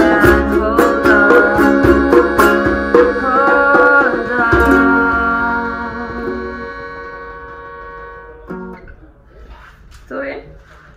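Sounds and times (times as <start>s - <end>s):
ukulele and melodica chord ringing: 0.0s - 9.0s.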